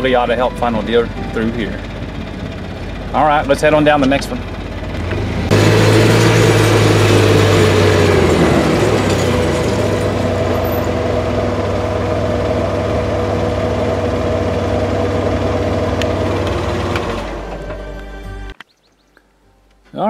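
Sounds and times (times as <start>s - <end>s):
vehicle engine running: 0.0s - 18.6s.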